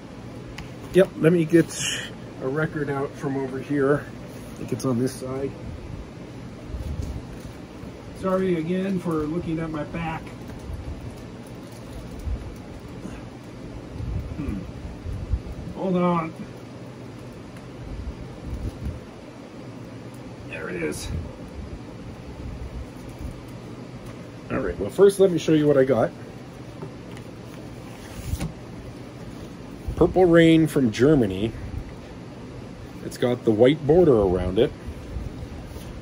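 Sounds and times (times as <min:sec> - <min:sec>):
low room hum: 0:00.0 - 0:36.0
record sleeves rustling and knocking: 0:26.5 - 0:30.1.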